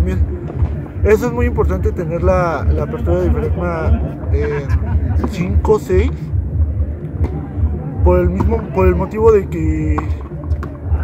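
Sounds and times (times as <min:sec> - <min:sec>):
man talking: 0:00.0 - 0:00.3, 0:01.0 - 0:06.4, 0:07.9 - 0:10.2.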